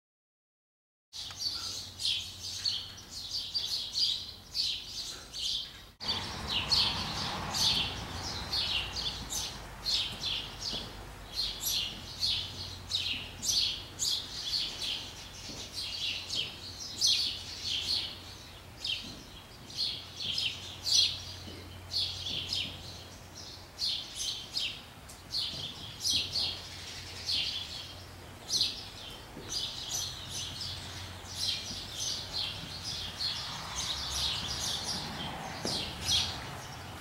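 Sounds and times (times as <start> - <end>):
small birds chirping: 1.2 - 37.0.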